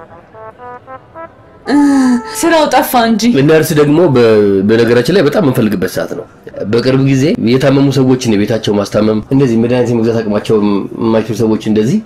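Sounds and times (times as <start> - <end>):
faint film music held notes: 0.0 - 5.9.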